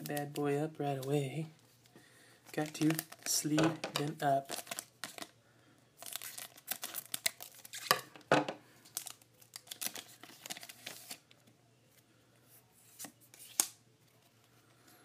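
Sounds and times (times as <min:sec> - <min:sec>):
foil wrapper tearing and crinkling: 0:02.5 - 0:05.3, 0:06.0 - 0:07.9, 0:08.9 - 0:11.2.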